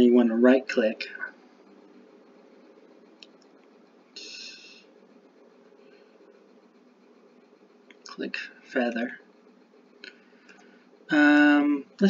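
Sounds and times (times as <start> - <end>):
faint clicks: 3.2 - 3.8.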